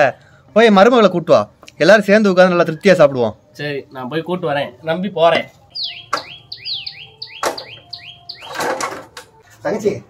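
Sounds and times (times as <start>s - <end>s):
bird chirping: 4.7s - 8.9s
sharp knocks: 7.4s - 7.8s.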